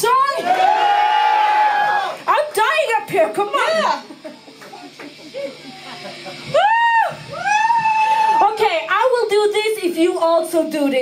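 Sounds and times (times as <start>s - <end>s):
woman whooping: 6.5s - 8.8s.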